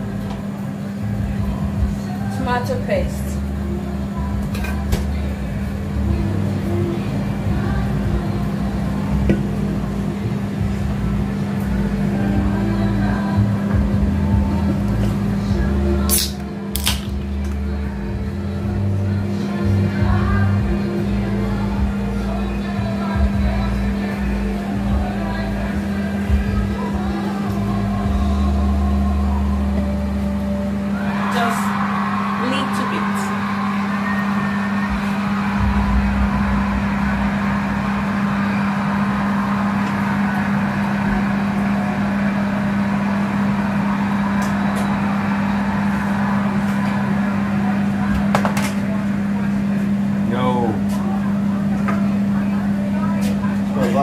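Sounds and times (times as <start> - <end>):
background music: 0.0 - 48.3
cooker hood extractor fan humming: 0.0 - 54.0.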